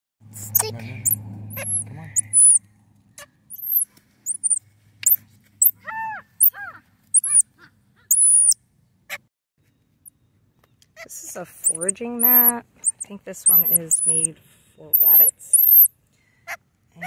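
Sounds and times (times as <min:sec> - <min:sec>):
monkey arching calls: 0:00.4 - 0:02.6, 0:03.5 - 0:04.6, 0:05.6 - 0:07.4, 0:08.1 - 0:08.6, 0:11.6 - 0:14.3, 0:14.9 - 0:15.9
monkeys chirping high-pitched: 0:00.4 - 0:02.6, 0:03.5 - 0:07.4, 0:08.1 - 0:08.6, 0:11.6 - 0:14.3, 0:14.9 - 0:15.9.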